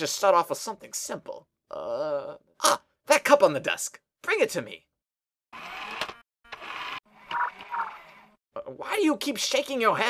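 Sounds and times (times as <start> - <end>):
robot servo whirs: 5.6 - 8.3.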